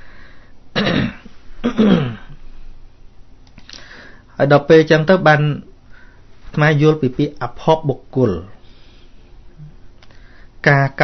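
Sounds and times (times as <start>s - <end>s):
man clearing his throat: 0.8s - 2.4s.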